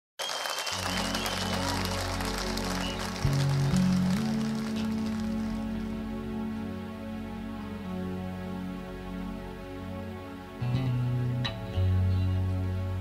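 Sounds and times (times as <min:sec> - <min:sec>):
audience applause: 0:00.2 - 0:05.9
sustained keyboard chords: 0:00.8 - 0:13.0.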